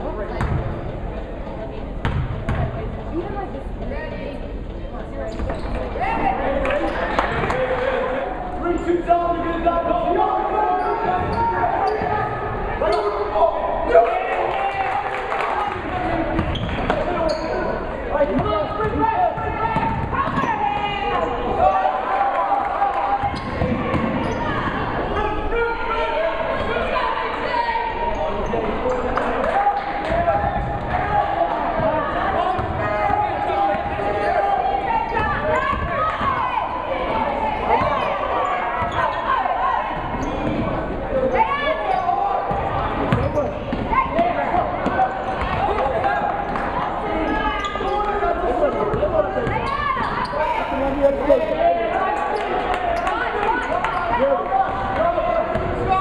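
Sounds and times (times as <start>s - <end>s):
echoing shouts and chatter: 0.0s - 56.0s.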